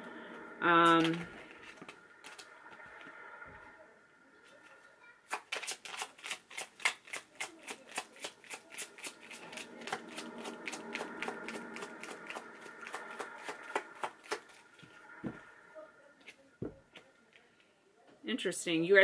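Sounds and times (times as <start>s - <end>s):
cards being shuffled: 5.3s - 10.0s.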